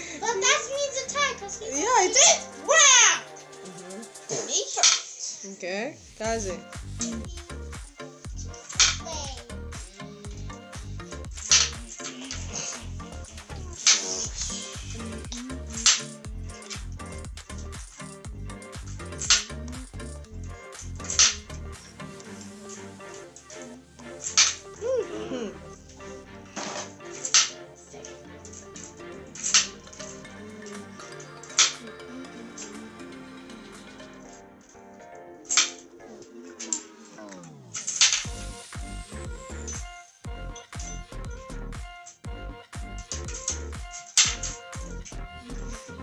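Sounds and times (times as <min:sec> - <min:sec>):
background music: 0:00.0 - 0:46.0.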